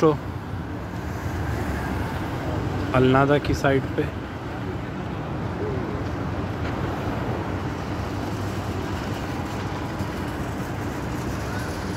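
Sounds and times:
low city rumble: 0.0 - 11.9.

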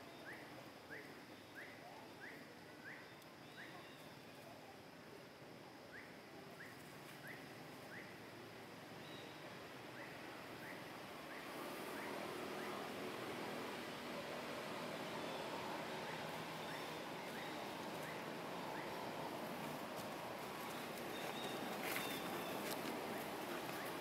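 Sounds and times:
steady background noise: 0.0 - 24.0.

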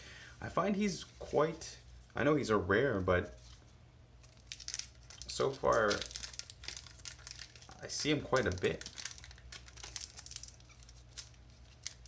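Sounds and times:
foil wrapper crinkling: 4.2 - 12.0
foil wrapper torn open: 4.2 - 12.0.

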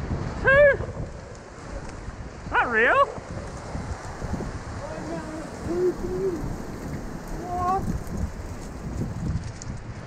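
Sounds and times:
surf washing around rocks: 0.0 - 9.6
wind buffeting microphone: 0.0 - 10.0.

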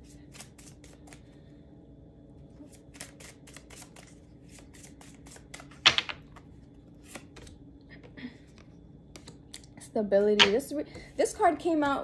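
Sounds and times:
cards being shuffled: 0.0 - 1.4, 2.6 - 7.6.

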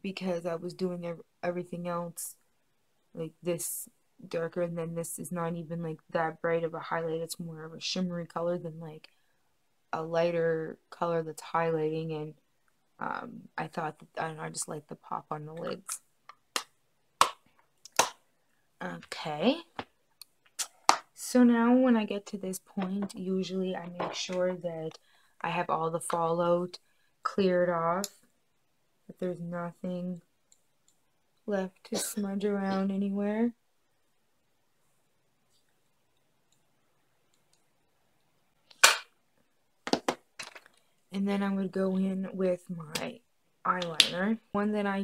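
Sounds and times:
makeup items clicking and tapping: 22.8 - 23.2.

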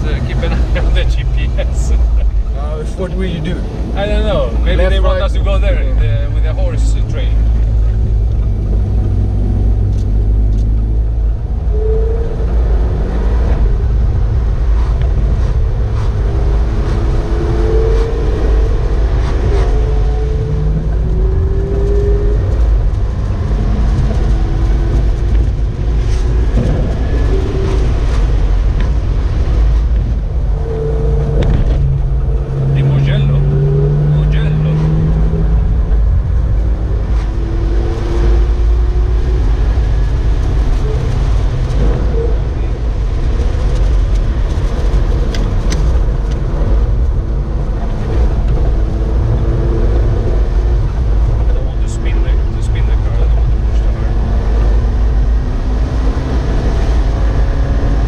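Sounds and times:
car engine rumble: 0.0 - 58.0
road noise: 0.0 - 58.0.

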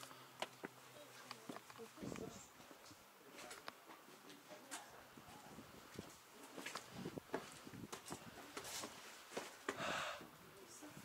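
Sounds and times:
footsteps on stone steps: 0.4 - 4.2, 5.8 - 9.9.

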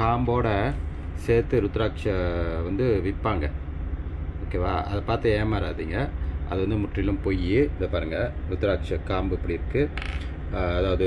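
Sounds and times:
man speaking: 0.0 - 3.6, 4.4 - 11.0
steady low hum: 0.0 - 11.0.

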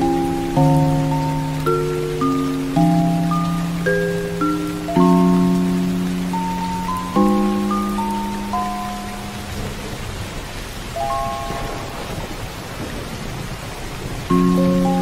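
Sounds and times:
slow keyboard chords: 0.0 - 9.8
steady rain: 0.0 - 15.0.

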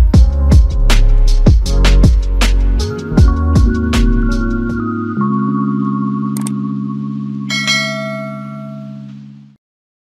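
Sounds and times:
low background music chord: 0.0 - 9.6
bright bell chime: 7.5 - 9.1.

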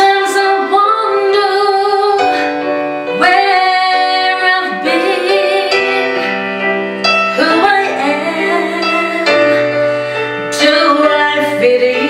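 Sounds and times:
woman singing a slow ballad: 0.0 - 6.7, 7.3 - 12.0
instrumental accompaniment: 0.0 - 12.0.

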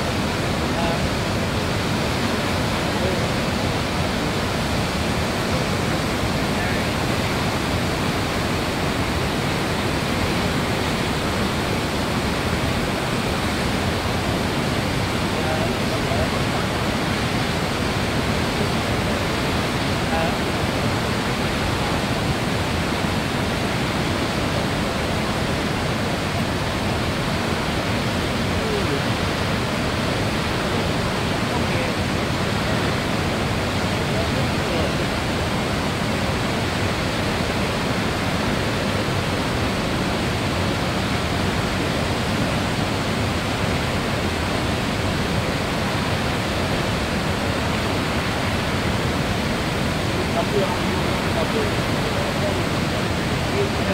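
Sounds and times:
waterfall rushing: 0.0 - 53.9.

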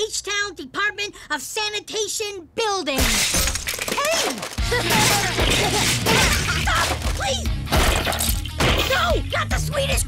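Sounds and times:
cartoon smashing and shattering: 3.0 - 9.1.

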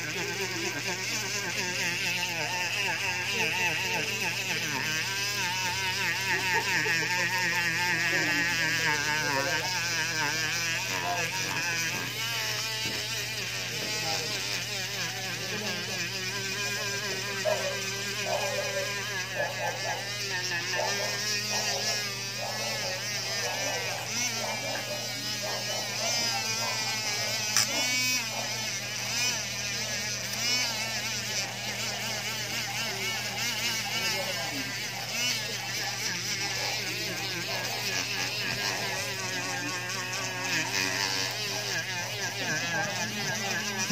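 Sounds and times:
rotary tool motor buzz: 0.0 - 43.9.

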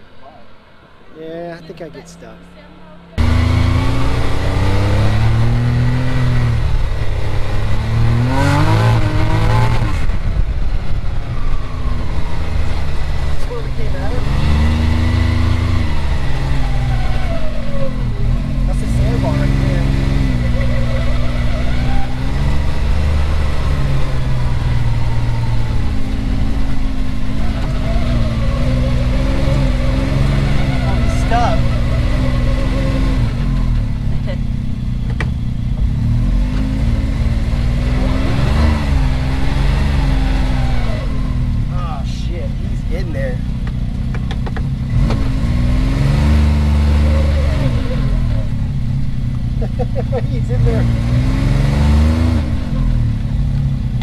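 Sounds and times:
engine revving: 1.6 - 54.0.

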